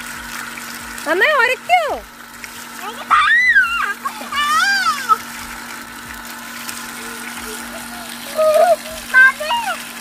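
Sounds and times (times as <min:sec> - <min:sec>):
electric pump humming: 0:00.0 - 0:10.0
hose water pouring and splashing: 0:00.0 - 0:10.0
girl crying out: 0:03.2 - 0:05.2.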